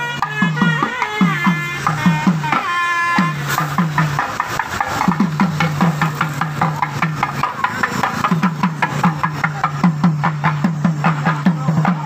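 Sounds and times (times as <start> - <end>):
barrel drum fast rhythm: 0.0 - 12.0.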